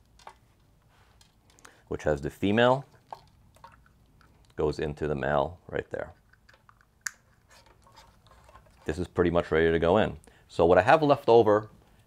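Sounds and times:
cables rustling: 0.0 - 4.8, 5.9 - 9.5.

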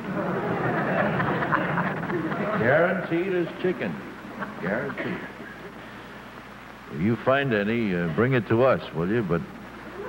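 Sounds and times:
audience laughing: 0.1 - 2.9.

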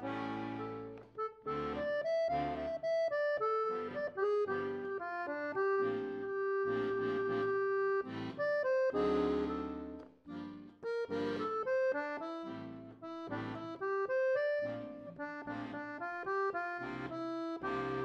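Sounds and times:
accordion pop melody: 0.0 - 18.0.

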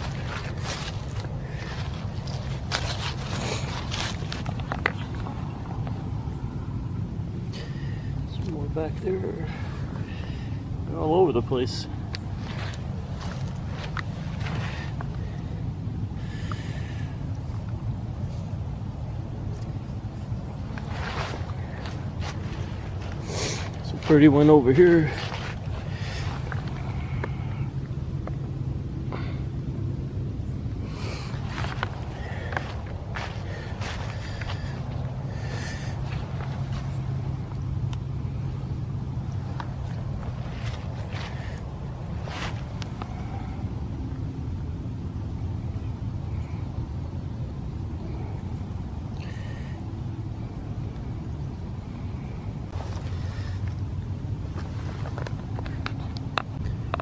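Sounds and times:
footsteps crunching through frosty leaves: 0.0 - 5.1, 20.8 - 27.5, 31.3 - 37.3
steady low rumble: 0.0 - 57.0.

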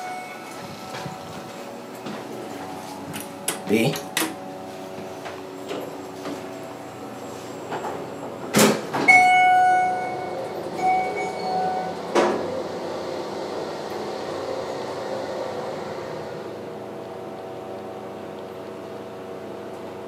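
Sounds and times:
elevator electronic chime: 0.0 - 1.4, 9.1 - 12.2
hydraulic pump humming: 0.0 - 20.0
elevator door thudding shut: 7.8 - 12.6.

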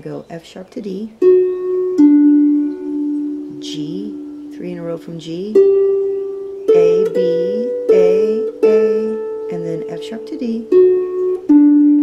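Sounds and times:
person speaking: 0.0 - 1.2, 3.4 - 5.8, 6.7 - 10.8
harp melody: 1.2 - 12.0.

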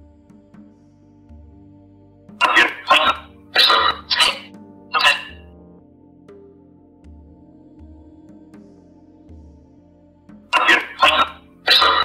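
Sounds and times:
soft ambient music: 0.0 - 12.0
rasping whispered voice: 2.4 - 5.4, 10.6 - 12.0.

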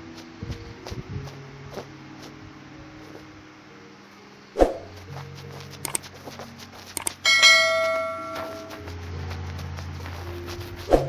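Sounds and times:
bright bell ding: 7.2 - 8.8.

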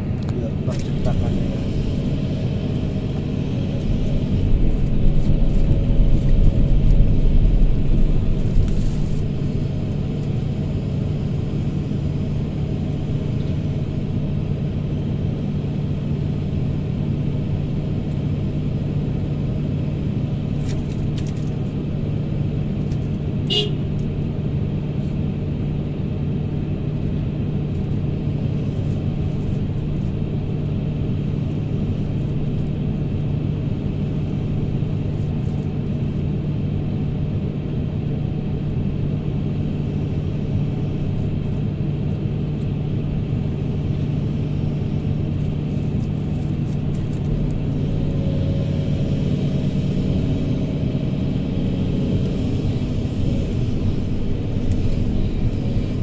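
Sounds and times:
diesel engine humming: 0.0 - 56.0.

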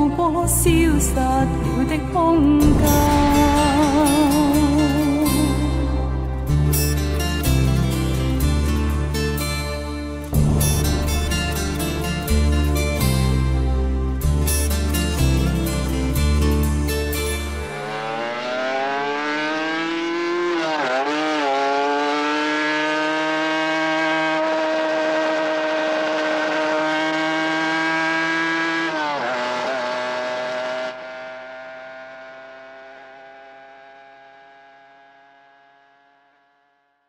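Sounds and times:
engine revving: 0.7 - 37.0.

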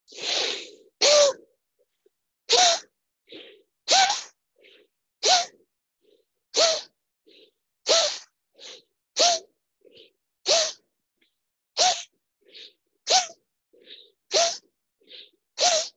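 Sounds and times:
forceful rhythmic breathing: 2.5 - 10.9, 11.8 - 15.9.

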